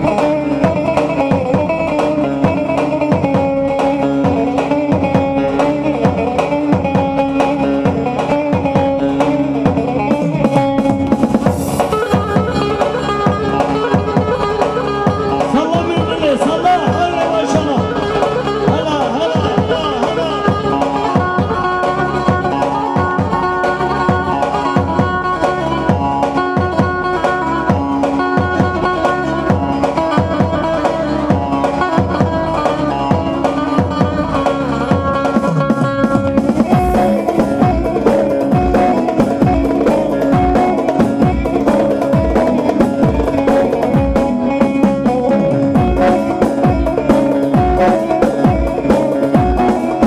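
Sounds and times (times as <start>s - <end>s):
live band dance music: 0.0s - 50.0s
steady drum beat: 0.0s - 50.0s.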